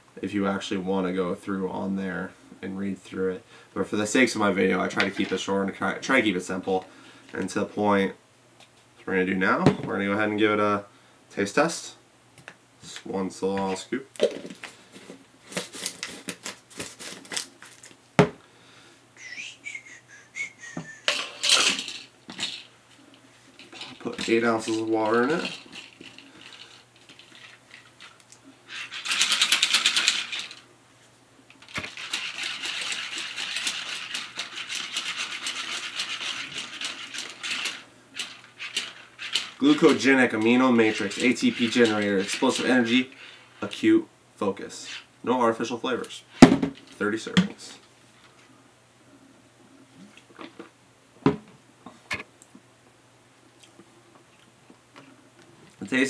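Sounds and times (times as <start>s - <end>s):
shaker bottle rattling: 14.2s - 17.9s, 21.1s - 22.7s, 23.6s - 30.6s, 31.6s - 42.9s.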